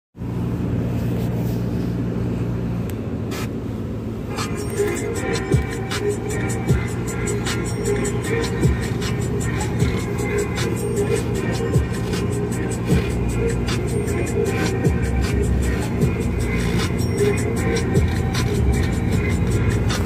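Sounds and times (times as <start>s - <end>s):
car road hum: 0.2s - 20.0s
music on car radio: 0.2s - 20.0s.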